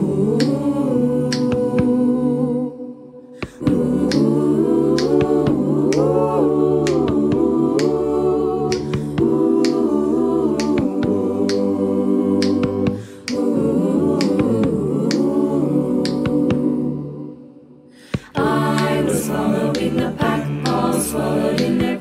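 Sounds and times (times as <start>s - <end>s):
a cappella choir singing: 0.0s - 22.0s
finger snaps: 0.4s - 0.6s, 1.3s - 2.0s, 3.3s - 6.2s, 6.8s - 8.0s, 8.7s - 11.8s, 12.4s - 13.6s, 14.2s - 15.4s, 16.0s - 16.7s, 18.0s - 22.0s.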